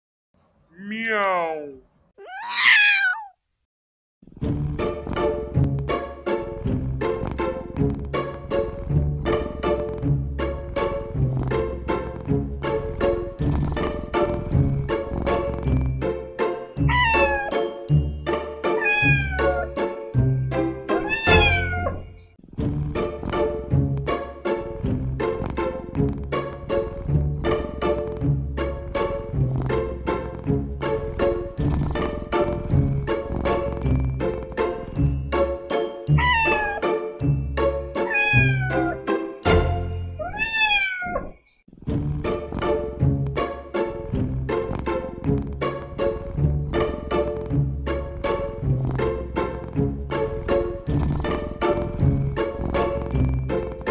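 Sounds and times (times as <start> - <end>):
cat meowing: 2.2 - 3.4, 16.8 - 17.6, 18.8 - 19.8, 20.9 - 22.1, 36.1 - 37.0, 38.0 - 39.0, 40.2 - 41.5.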